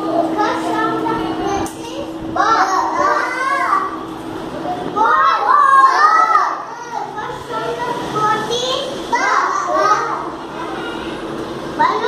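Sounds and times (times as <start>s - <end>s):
small children's voices: 0.0s - 12.0s
young child speaking: 0.1s - 4.0s, 4.6s - 11.0s, 11.8s - 12.0s.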